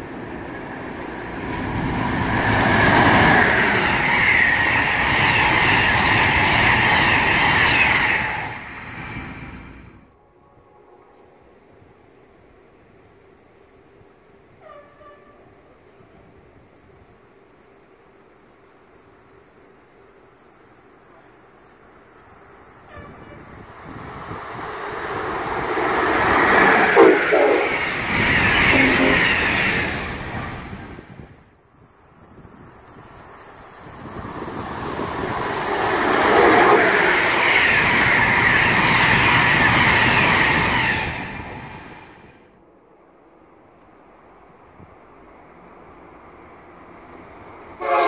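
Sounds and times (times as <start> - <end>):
electric trains passing at speed: 0.0 - 48.0.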